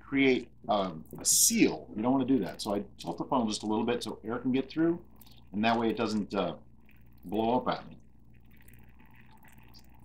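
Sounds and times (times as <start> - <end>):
liquid trickling through funnel: 2.4 - 10.0.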